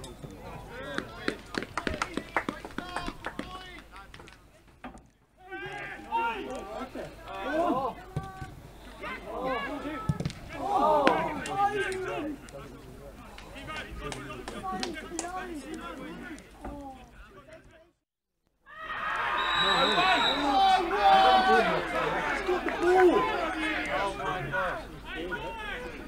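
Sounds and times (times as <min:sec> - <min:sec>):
men shouting and calling: 0:05.4 - 0:17.6, 0:18.8 - 0:26.0.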